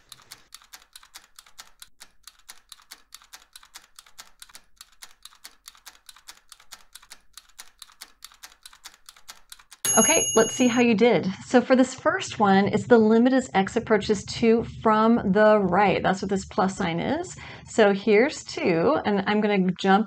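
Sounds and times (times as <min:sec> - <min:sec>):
timer ticking: 0:00.0 - 0:11.0
bright bell ding: 0:09.9 - 0:10.9.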